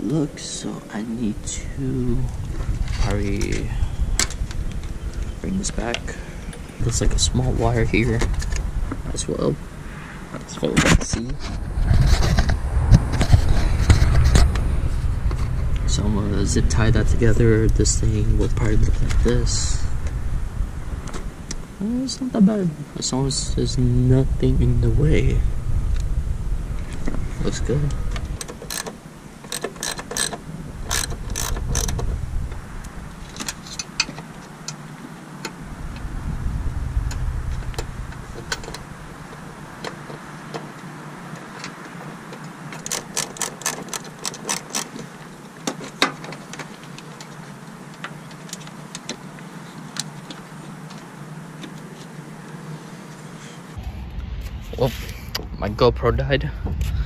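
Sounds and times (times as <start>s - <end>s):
zip tie ratchet clicking: 28.4s - 32.0s, 42.8s - 45.0s.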